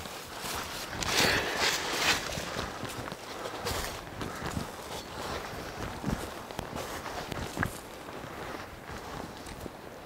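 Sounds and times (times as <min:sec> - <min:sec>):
crutches and footsteps on leaves: 0:00.0 - 0:10.0
leaves rustling: 0:00.0 - 0:10.0.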